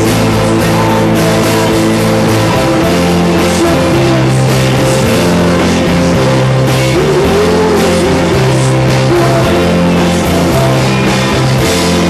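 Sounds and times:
bass guitar: 0.0 - 12.0
electric guitar: 0.0 - 12.0
live rock band playing: 0.0 - 12.0.

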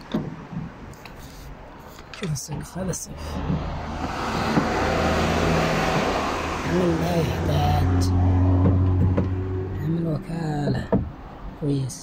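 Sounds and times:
car running from inside cabin: 2.4 - 11.4.

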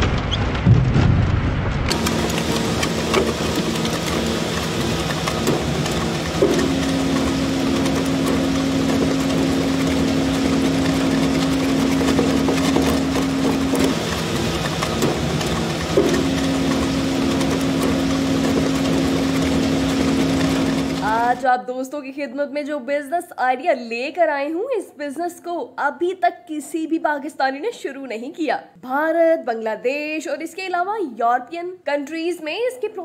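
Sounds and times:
higher steady hum: 0.7 - 21.4
wood shredder grinding wood: 1.9 - 21.4.

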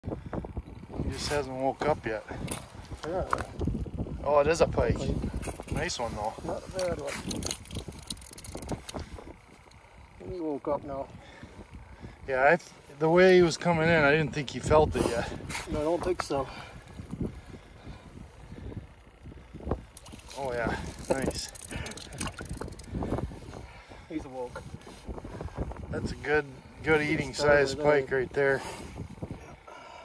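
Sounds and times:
wind buffeting microphone: 0.0 - 30.0
fishing line handling clicks and rustles: 1.2 - 3.9, 5.2 - 10.3, 15.5 - 27.4.

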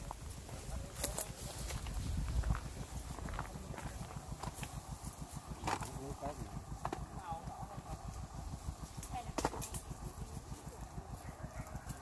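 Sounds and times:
low fluttering microphone rumble: 0.0 - 12.0.

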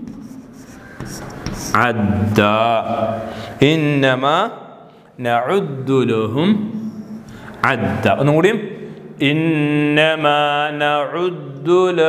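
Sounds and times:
chalk scraping on a blackboard: 0.0 - 1.8
man chanting: 1.7 - 7.0, 7.6 - 12.0.

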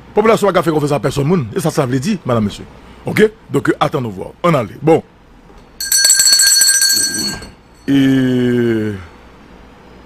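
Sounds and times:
fluttering bell-like ringing tone: 5.8 - 8.0.

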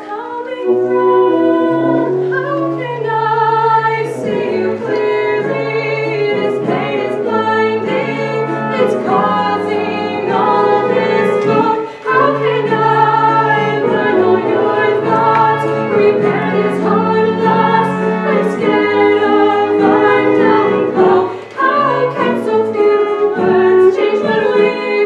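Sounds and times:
voices singing sustained lines: 0.0 - 25.0
held low instrumental notes: 0.6 - 25.0.

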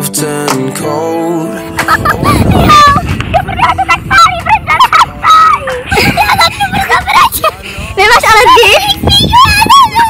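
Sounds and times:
girl squealing: 2.1 - 7.3.

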